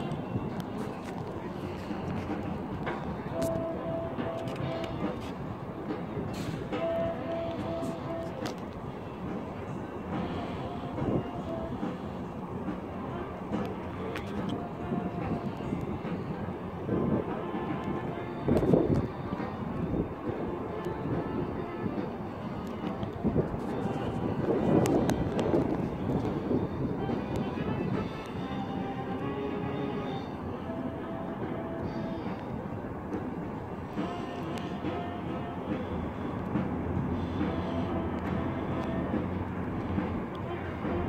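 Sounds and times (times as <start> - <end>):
distant diesel locomotive rumbling: 0.0 - 41.0.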